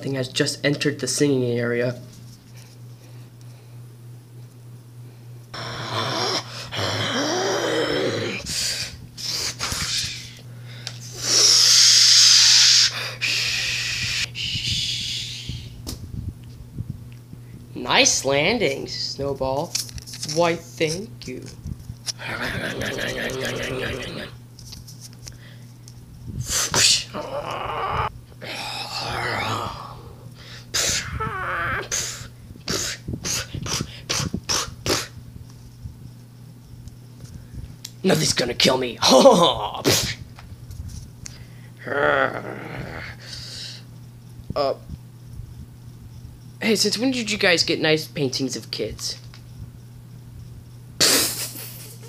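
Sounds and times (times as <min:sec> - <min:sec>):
child hissing: 0:05.6 - 0:10.4, 0:11.1 - 0:15.8, 0:26.4 - 0:35.2
person making monster noises: 0:05.6 - 0:10.4, 0:22.1 - 0:24.4, 0:26.5 - 0:35.1, 0:39.0 - 0:40.2, 0:41.8 - 0:43.4.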